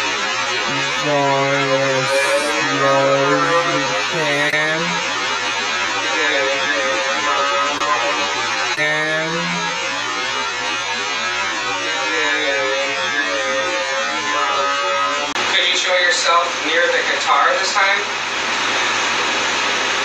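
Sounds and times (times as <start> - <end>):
muffled indistinct voice: 0.7 - 5.1, 8.8 - 9.8.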